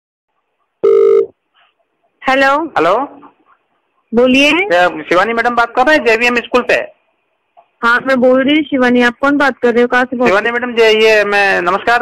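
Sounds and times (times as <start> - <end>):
short electronic telephone beep: 0.8 - 1.3.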